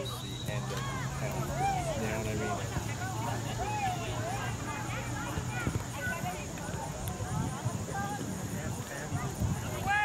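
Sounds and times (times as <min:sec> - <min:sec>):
distant people shouting: 0:00.0 - 0:06.3.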